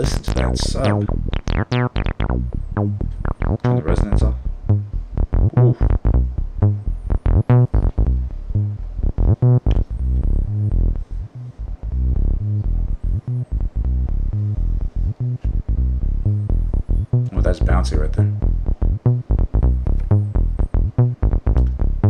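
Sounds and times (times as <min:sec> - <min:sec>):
acid synth bassline: 0:00.0 - 0:22.0.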